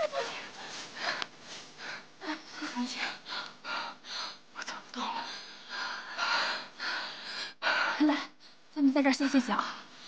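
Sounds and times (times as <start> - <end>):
woman panting: 0.0 - 4.4, 5.0 - 8.6.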